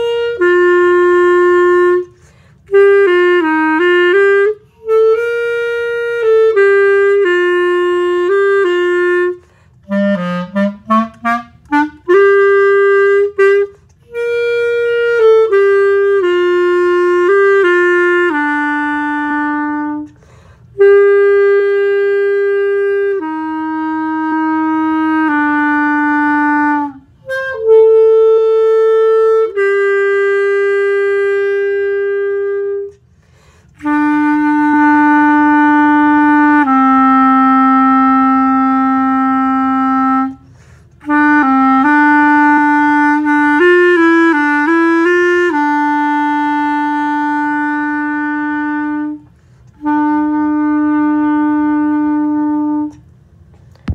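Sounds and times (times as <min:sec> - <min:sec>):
clarinet melody: 0:00.0 - 0:53.9.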